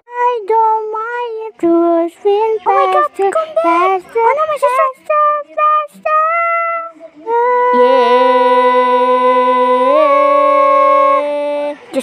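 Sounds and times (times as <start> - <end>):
person singing pop vocal: 0.1 - 12.0.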